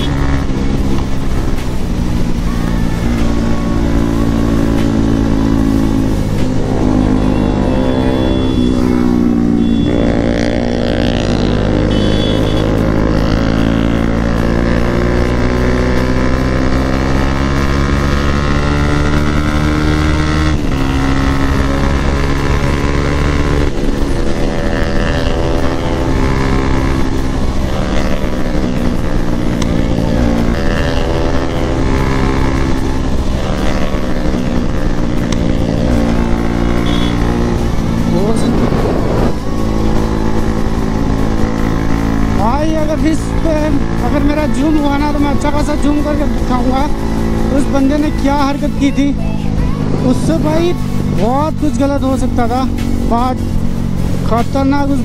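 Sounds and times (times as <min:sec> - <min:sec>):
wind rushing: 0:00.0 - 0:11.8, 0:37.4 - 0:42.4
motorcycle engine revving: 0:00.0 - 0:55.0.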